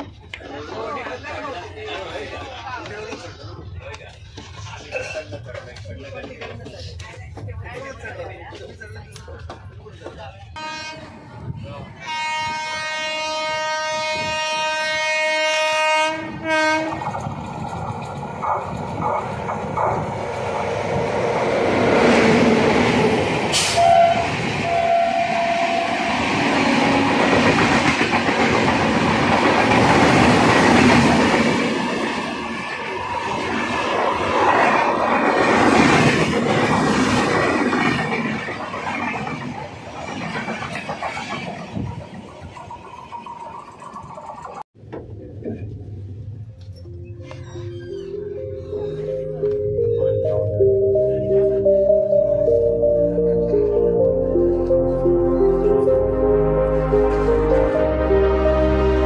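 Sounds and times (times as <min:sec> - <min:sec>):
train wheel noise: 0:00.0 - 0:14.8, 0:16.3 - 0:51.1
passenger train passing: 0:00.0 - 0:59.0
train horn: 0:10.6 - 0:11.2, 0:12.0 - 0:17.1, 0:23.6 - 0:27.3.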